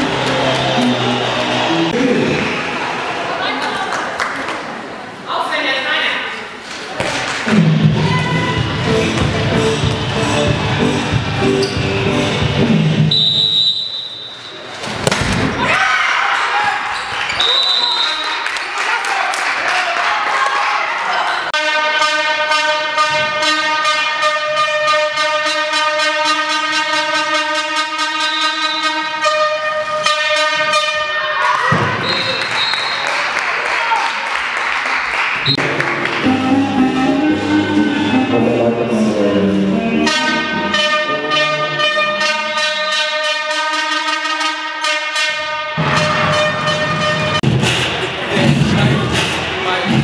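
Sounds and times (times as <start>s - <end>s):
crowd cheering and clapping: 0.0s - 5.1s, 6.8s - 12.7s, 15.6s - 21.5s, 31.4s - 38.4s
voices echoing in a hall: 0.0s - 11.1s, 15.6s - 21.6s, 30.6s - 42.6s, 47.8s - 50.0s
pulsing air horn note: 21.6s - 31.4s, 35.5s - 47.5s.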